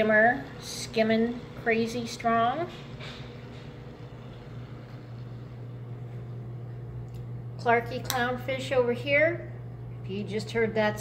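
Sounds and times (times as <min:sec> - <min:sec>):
aquarium pumps humming: 0:00.0 - 0:11.0.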